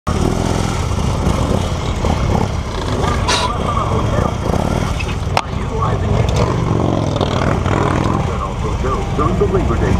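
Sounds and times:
motorcycle engine running: 0.1s - 9.9s.

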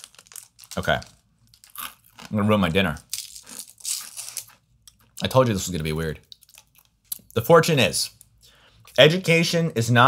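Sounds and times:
fortune cookie crunching: 0.0s - 7.4s.

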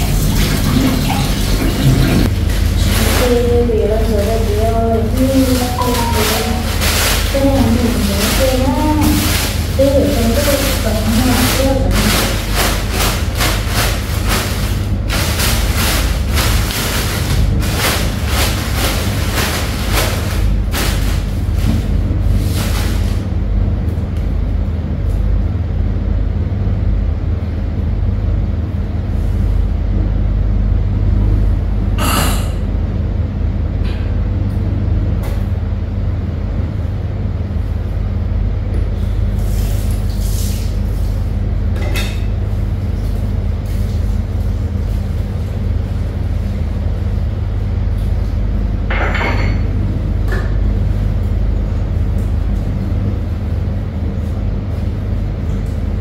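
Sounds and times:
steady low hum: 0.0s - 56.0s
household items clattering: 1.6s - 23.1s
plastic bag rustling: 2.2s - 23.4s.

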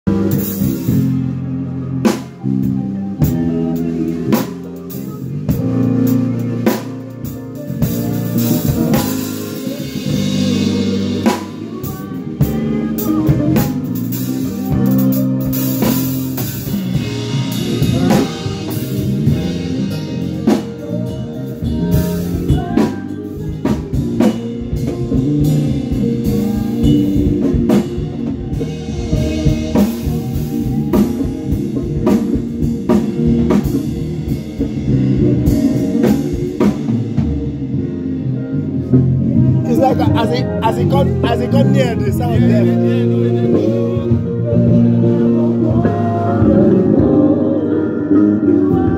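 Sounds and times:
band playing: 0.0s - 48.9s
bass line: 0.0s - 48.9s.

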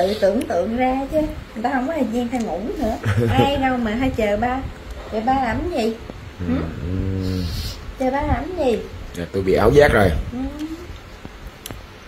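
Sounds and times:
man's low hum-like grunt: 6.4s - 7.6s
breathy hiss: 6.4s - 8.0s.

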